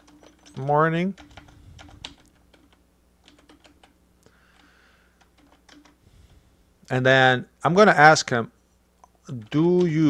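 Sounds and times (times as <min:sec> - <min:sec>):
computer keyboard typing: 0:00.0 - 0:06.0.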